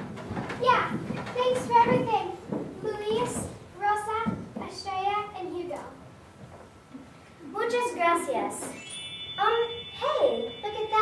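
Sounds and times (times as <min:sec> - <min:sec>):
children speaking: 0:00.6 - 0:06.0, 0:07.4 - 0:08.8, 0:09.4 - 0:11.0.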